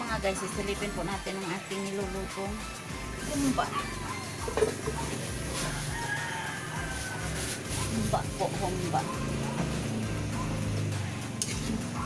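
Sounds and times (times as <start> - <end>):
rooster crowing: 3.8 - 7.8.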